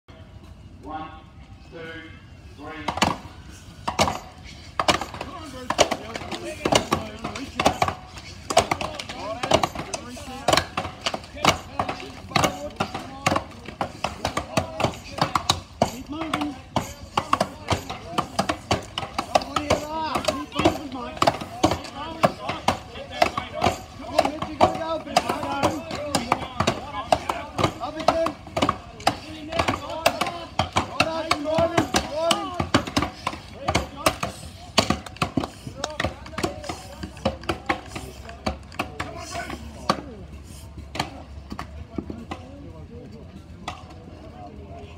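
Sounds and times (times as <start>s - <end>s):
voices calling: 0.1s - 44.9s
axes chopping wood: 3.9s - 40.1s.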